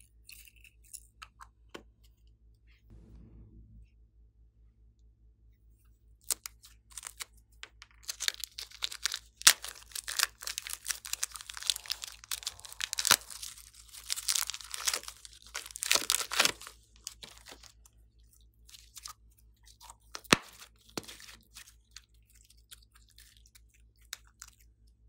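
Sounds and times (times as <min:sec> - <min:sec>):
plastic bag crinkling: 0:08.0 - 0:17.7.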